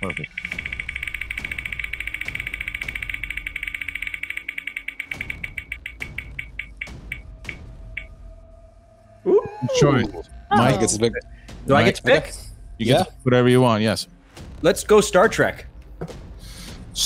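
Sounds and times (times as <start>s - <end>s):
prize wheel clicker ticking: 0.0s - 7.2s.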